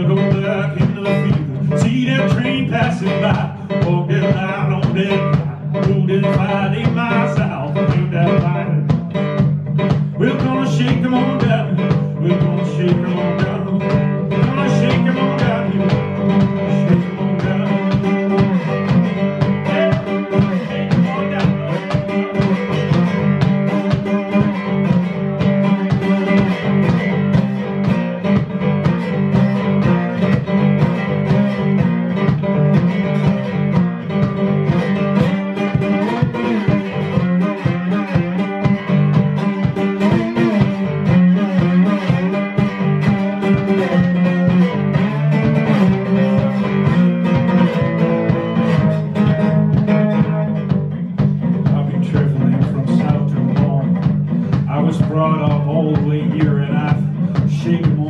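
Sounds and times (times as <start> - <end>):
cajon beat: 0.0 - 58.0
slide guitar: 0.0 - 58.0.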